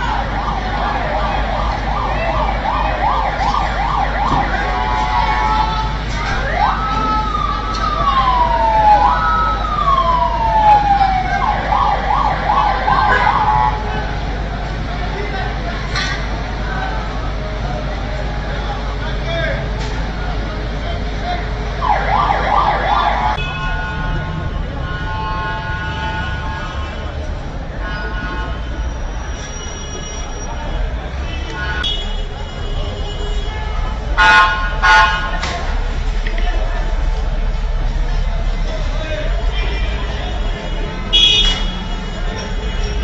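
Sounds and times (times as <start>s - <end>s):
emergency vehicle siren: 0.0s - 14.4s, 21.7s - 23.9s
vehicle engine rumbling: 0.0s - 43.0s.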